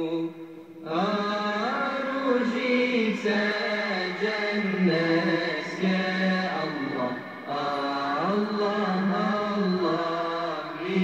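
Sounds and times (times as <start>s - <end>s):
solo voice religious chanting: 0.0s - 11.0s.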